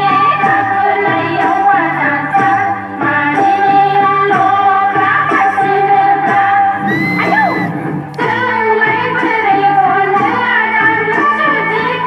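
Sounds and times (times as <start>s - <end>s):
folk dance music with singing: 0.0s - 12.0s.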